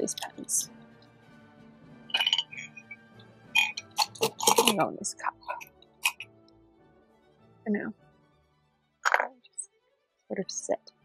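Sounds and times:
pens clinking against a cup: 2.2s - 2.8s, 3.6s - 4.8s, 9.1s - 9.3s.

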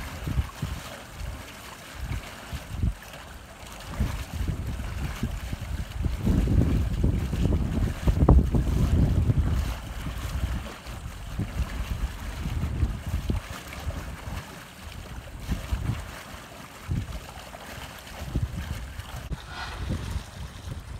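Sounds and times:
wind buffeting microphone: 0.0s - 3.0s, 3.8s - 16.2s, 16.8s - 20.9s.

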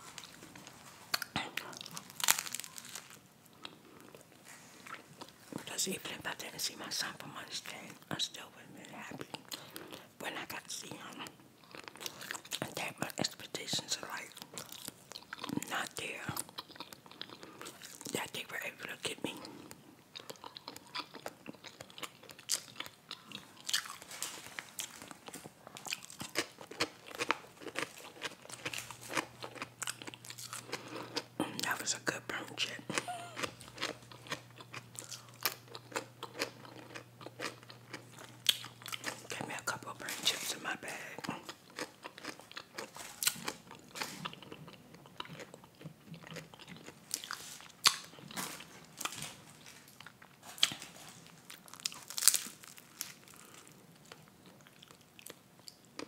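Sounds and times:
chewing and crunching food: 0.0s - 8.1s, 8.8s - 56.0s
faint low hum: 0.0s - 56.0s.

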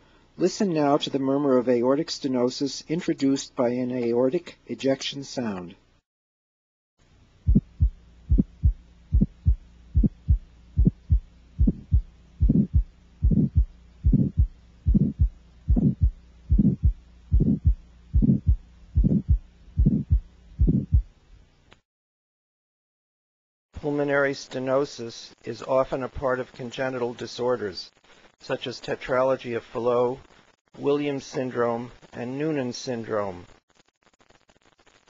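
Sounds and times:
harsh heart murmur: 7.4s - 21.1s
heartbeat through stethoscope: 7.4s - 21.1s.

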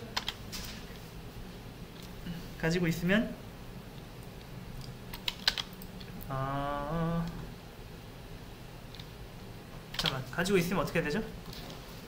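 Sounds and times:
computer keyboard keystrokes: 0.2s - 0.4s, 4.8s - 6.0s, 9.9s - 10.2s.

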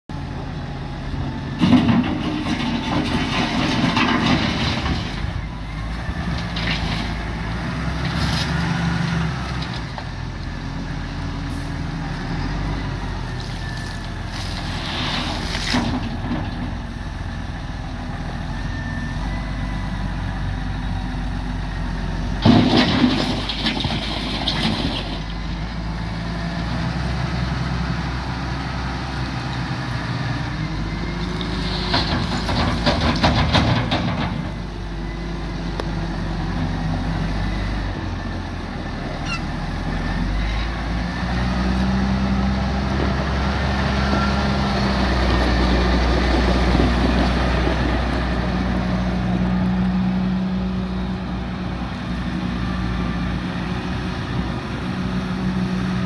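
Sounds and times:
tractor diesel engine running: 0.1s - 56.0s
gravel and stones rattling: 1.6s - 5.5s, 13.3s - 16.9s, 22.4s - 25.6s, 31.3s - 34.7s, 44.8s - 49.1s.

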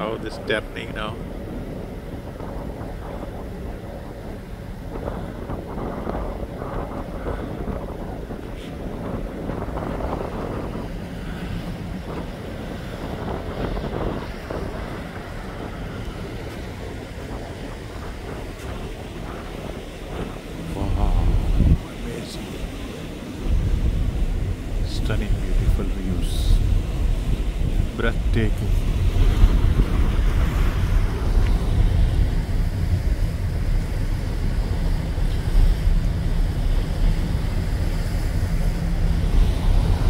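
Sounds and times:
ship engines running: 0.0s - 40.0s
wind buffeting microphone: 0.0s - 40.0s.

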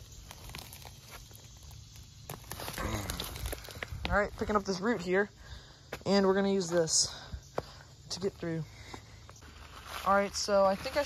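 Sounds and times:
footsteps on dry leaves and dirt: 0.0s - 11.0s.

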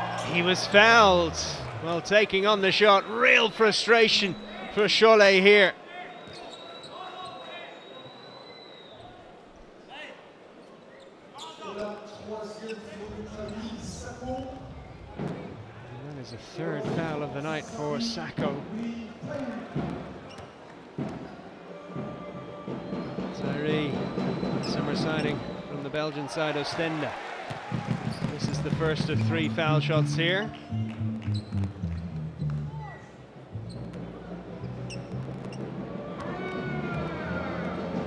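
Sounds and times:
basketball bouncing on court: 27.5s - 29.2s
crowd chatter in large hall: 32.6s - 38.0s.

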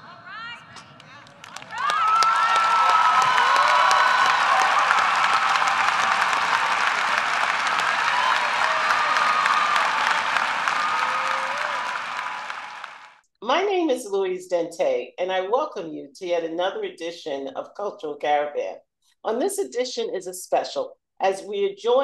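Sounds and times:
voices cheering: 0.0s - 13.2s
audience clapping: 0.8s - 13.2s.

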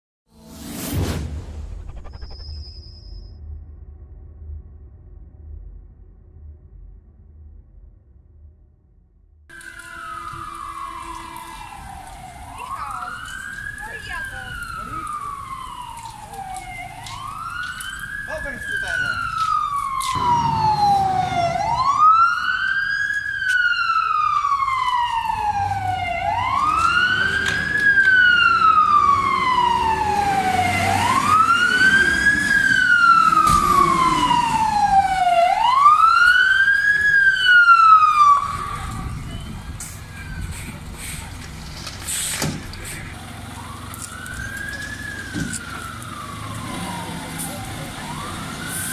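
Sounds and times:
fire engine siren wailing: 9.5s - 48.9s.

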